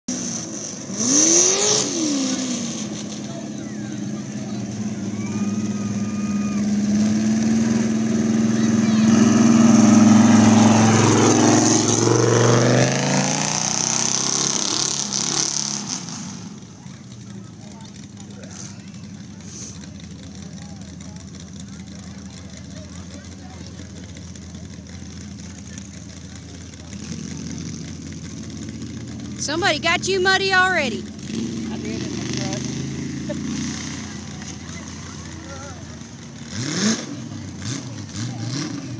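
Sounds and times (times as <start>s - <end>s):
engine running at high revs: 0.1s - 38.9s
low steady engine hum: 1.9s - 38.9s.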